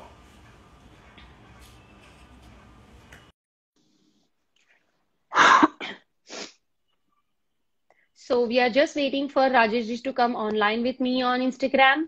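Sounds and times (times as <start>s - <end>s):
woman sneezing: 5.3s - 6.6s.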